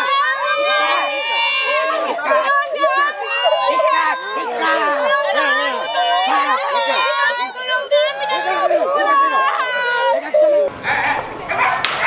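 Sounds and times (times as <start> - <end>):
women wailing: 0.0 - 11.8.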